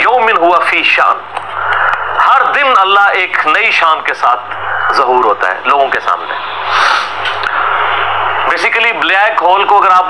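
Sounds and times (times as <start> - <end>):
low electrical hum: 0.0 - 10.0
man speaking: 2.2 - 6.5, 8.5 - 10.0
hiss: 6.6 - 7.2.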